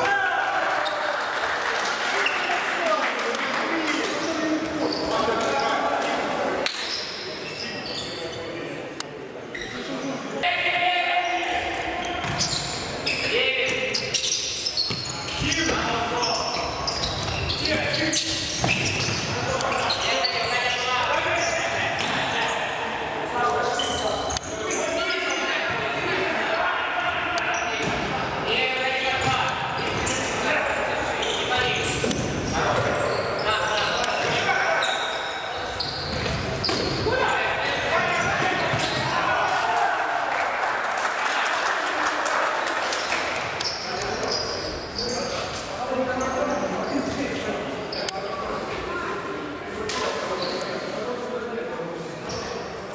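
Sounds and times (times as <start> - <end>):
echoing voices in a sports hall: 0.0 - 52.9.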